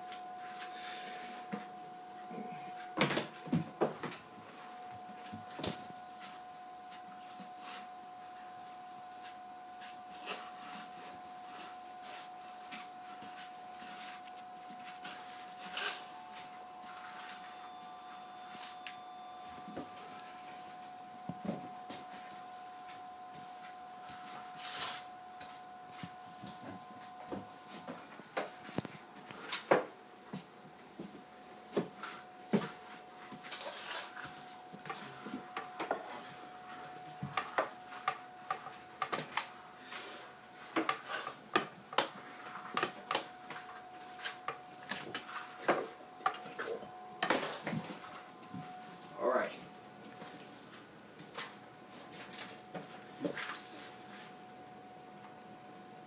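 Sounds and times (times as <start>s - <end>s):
steady high tone: 0.0s - 29.9s, 31.4s - 40.9s, 42.3s - 50.7s
dustpan and brush scraping floor: 0.4s - 1.8s, 8.8s - 18.8s, 19.4s - 29.7s, 31.7s - 41.4s, 42.0s - 49.0s.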